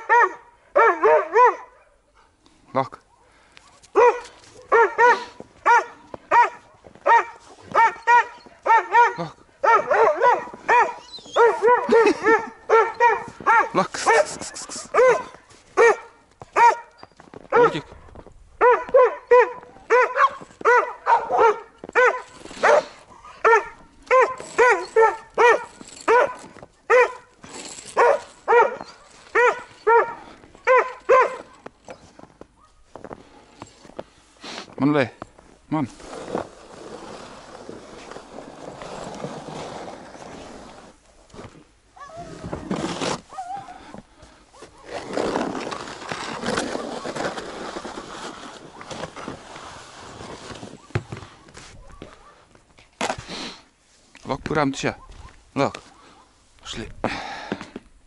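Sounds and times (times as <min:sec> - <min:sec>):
dog barking in high-pitched yaps: 0:00.0 - 0:02.0, 0:03.6 - 0:17.9, 0:18.6 - 0:27.3, 0:28.0 - 0:31.6.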